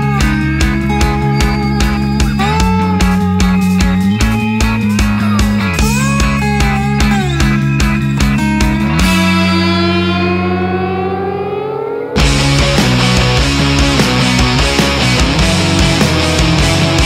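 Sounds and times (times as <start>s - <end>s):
drums playing a beat: 0.0s - 9.7s, 12.2s - 17.0s
electric guitar chord bending: 0.0s - 17.0s
rock band playing: 0.0s - 17.0s.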